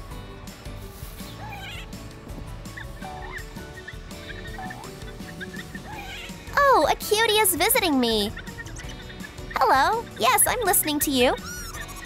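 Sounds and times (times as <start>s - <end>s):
background music: 0.0s - 12.0s
cartoon squirrel squeaky chirps: 2.8s - 12.0s.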